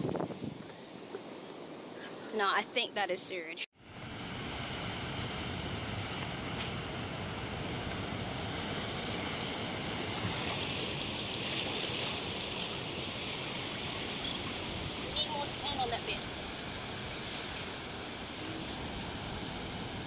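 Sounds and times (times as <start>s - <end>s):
ocean surf washing on beach: 3.8s - 20.0s.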